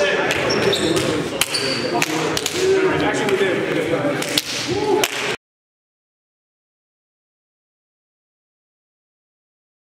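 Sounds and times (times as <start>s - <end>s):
men talking: 0.0s - 4.9s
hand slaps: 4.2s - 5.4s.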